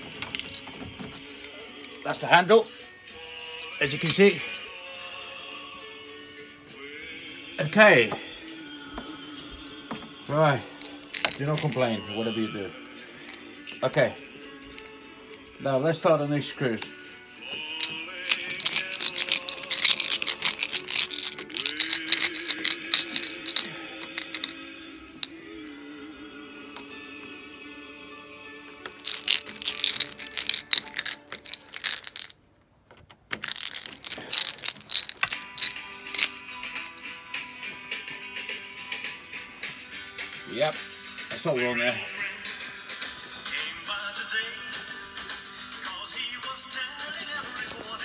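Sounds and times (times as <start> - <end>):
screwdriver clicking and rattling: 0.0 - 1.2, 11.0 - 11.8, 17.8 - 24.6, 28.8 - 32.3, 32.9 - 36.4
background music: 0.0 - 32.3, 33.3 - 48.0.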